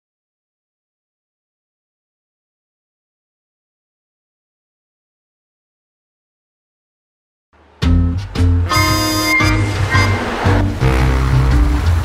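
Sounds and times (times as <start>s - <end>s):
synth music with pulsing bass: 7.8s - 12.0s
rushing whoosh: 9.3s - 12.0s.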